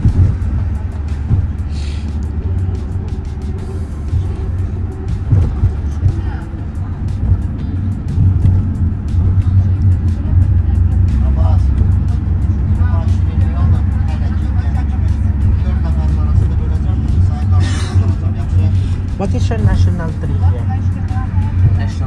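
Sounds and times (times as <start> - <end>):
vehicle engine and road noise: 0.0 - 22.0.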